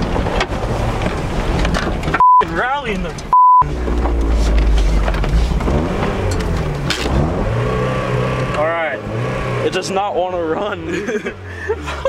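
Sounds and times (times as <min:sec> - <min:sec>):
low rumble inside car: 0:00.0 - 0:12.0
censor bleep tone: 0:02.2 - 0:02.4, 0:03.3 - 0:03.7.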